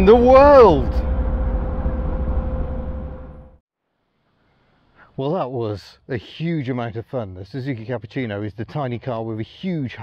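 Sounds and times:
wind and road noise: 0:00.0 - 0:03.6.

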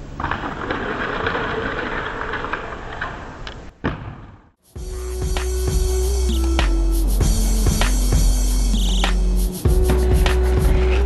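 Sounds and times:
skates grinding on concrete: 0:00.2 - 0:03.4, 0:09.0 - 0:11.0.

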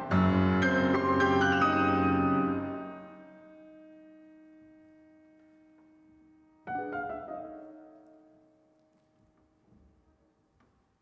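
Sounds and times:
piano notes ringing: 0:00.0 - 0:08.7.

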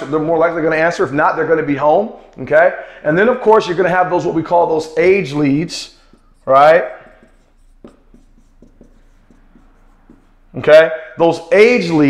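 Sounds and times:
marker writing on whiteboard: 0:03.3 - 0:12.0.

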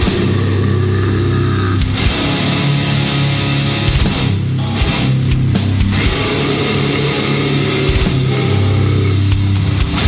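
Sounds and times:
distorted metal guitars droning: 0:00.0 - 0:10.0.

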